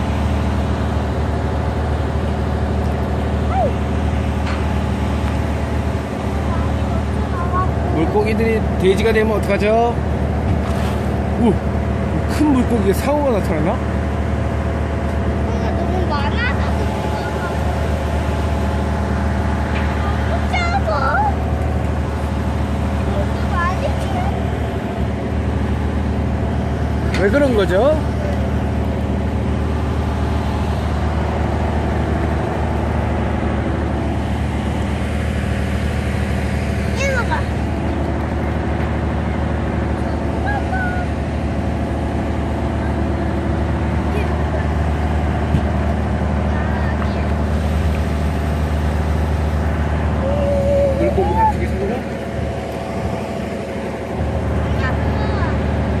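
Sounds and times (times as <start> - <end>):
boat engine humming: 0.0 - 56.0.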